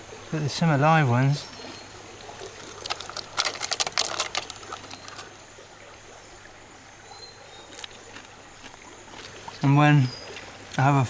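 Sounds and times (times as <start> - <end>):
water trickling in stream: 0.0 - 11.0
crackling plastic clicks: 2.6 - 5.3.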